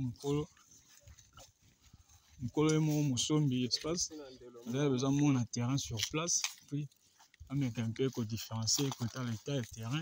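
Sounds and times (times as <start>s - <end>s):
footsteps on dry grass: 0.0s - 10.0s.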